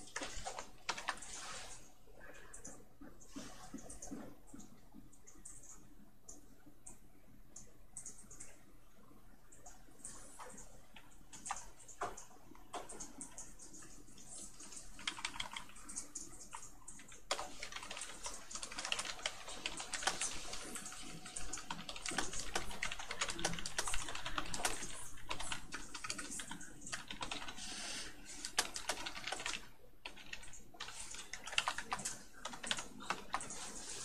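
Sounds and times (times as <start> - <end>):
typing on computer keyboard: 0.0 - 1.4, 3.8 - 8.6, 9.6 - 34.0.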